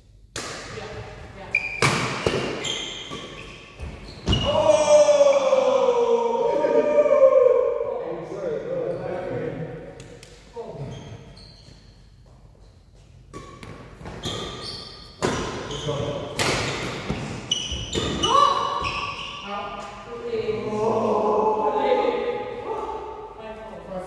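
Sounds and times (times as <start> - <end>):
shoes squeaking on court floor: 1.4 - 4.6, 10.8 - 19.4
players' voices: 19.5 - 24.0.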